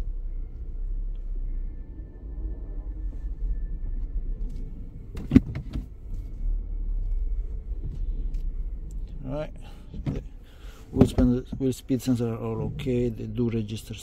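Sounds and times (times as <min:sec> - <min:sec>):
car engine idling: 0:00.0 - 0:14.0.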